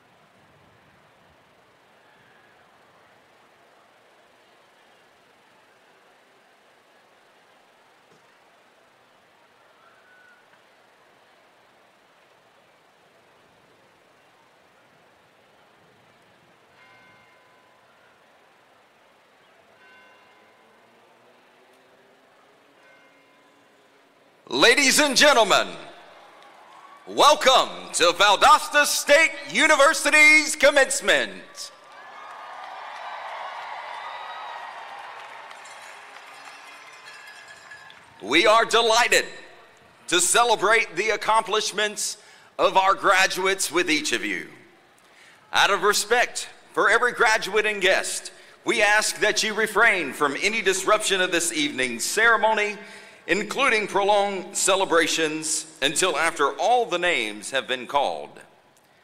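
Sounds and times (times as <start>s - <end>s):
faint background hiss: 0.0s - 59.0s
crowd applauding and cheering: 26.1s - 27.2s, 31.7s - 38.3s.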